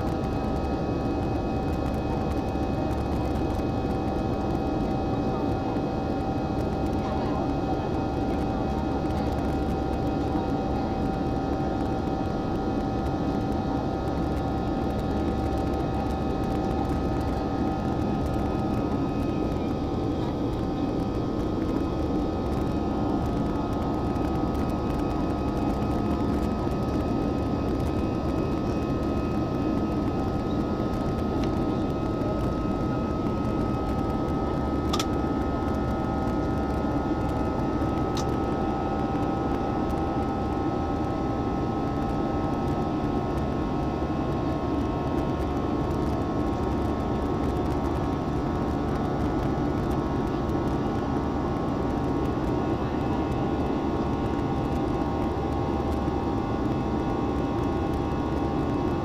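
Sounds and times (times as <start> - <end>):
thin steady whining tones: 0.0 - 59.0.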